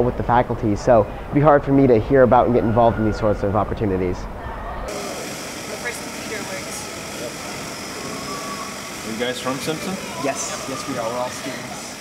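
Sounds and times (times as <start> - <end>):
faint voices: 4.3 - 12.0.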